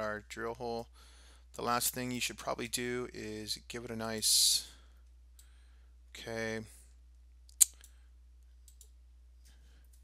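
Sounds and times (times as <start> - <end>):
computer mouse click: 8.6 - 9.0.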